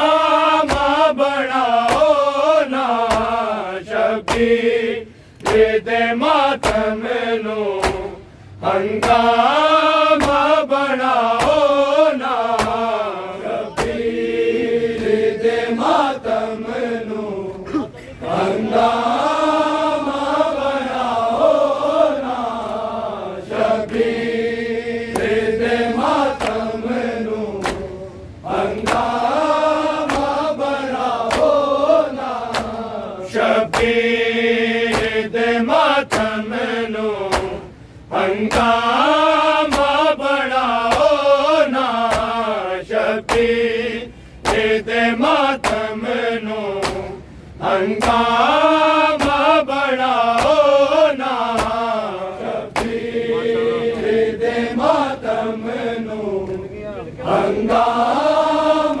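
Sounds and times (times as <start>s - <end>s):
men chanting a lament: 0.0s - 59.0s
crowd slapping chests: 0.6s - 3.5s, 4.2s - 4.7s, 5.4s - 5.8s, 6.5s - 7.0s, 7.7s - 8.2s, 9.0s - 9.4s, 10.0s - 10.6s, 11.2s - 11.8s, 12.4s - 13.0s, 13.6s - 14.2s, 25.0s - 28.0s, 28.7s - 34.1s, 34.8s - 35.3s, 35.9s - 36.4s, 37.2s - 37.6s, 38.4s - 40.1s, 40.7s - 41.2s, 42.0s - 42.4s, 43.2s - 43.6s, 44.4s - 46.0s, 46.6s - 47.2s, 47.9s - 48.4s, 49.0s - 49.5s, 50.1s - 53.1s.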